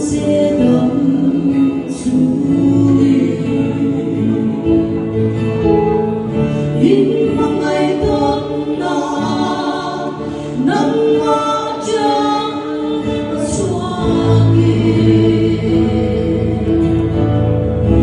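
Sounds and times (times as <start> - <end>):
woman singing: 0.0 - 5.1, 6.6 - 18.0
backing music: 0.0 - 18.0
bass accompaniment: 0.0 - 18.0.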